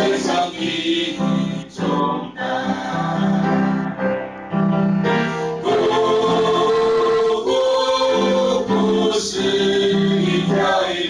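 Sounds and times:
group singing a hymn: 0:00.0 - 0:04.1, 0:05.4 - 0:11.0.

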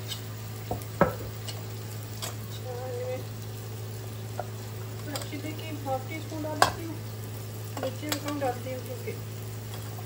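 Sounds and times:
onion and tomato sizzling in pan: 0:00.0 - 0:10.0.

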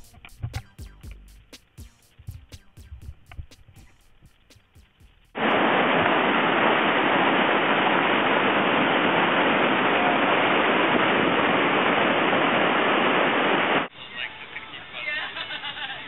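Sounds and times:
whitewater rapids rushing: 0:05.4 - 0:13.9.

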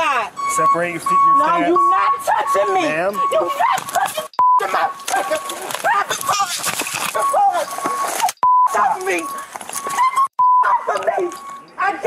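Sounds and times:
high-pitched censor bleeps: 0:00.0 - 0:03.6, 0:04.4 - 0:06.6, 0:07.2 - 0:11.8
loud heated shouting: 0:01.8 - 0:06.6.

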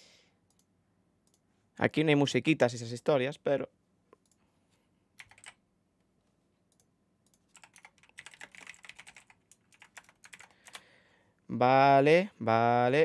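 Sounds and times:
typing on computer keyboard: 0:05.2 - 0:05.6, 0:07.3 - 0:10.8.

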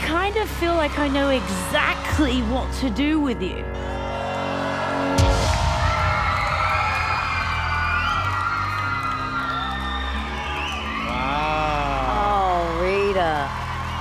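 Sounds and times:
backing music: 0:00.0 - 0:14.0
audience whooping and cheering: 0:03.7 - 0:14.0.

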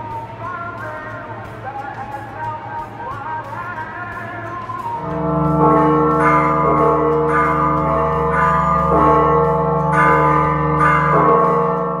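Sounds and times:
church bells ringing: 0:05.0 - 0:12.0
deep sustained bell hum: 0:05.0 - 0:12.0.

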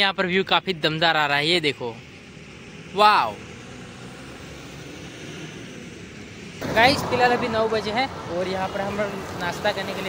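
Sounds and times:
open air background noise: 0:00.0 - 0:10.0.

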